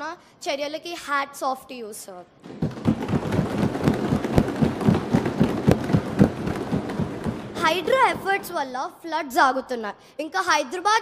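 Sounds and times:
people thumping desks: 2.4s - 8.6s.

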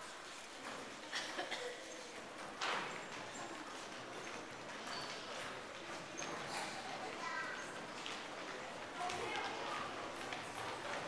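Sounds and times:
children's footsteps on stage: 2.2s - 11.0s.

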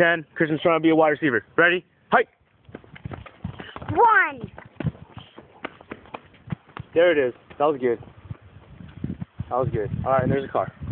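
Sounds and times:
running footfalls on asphalt: 2.5s - 9.4s.

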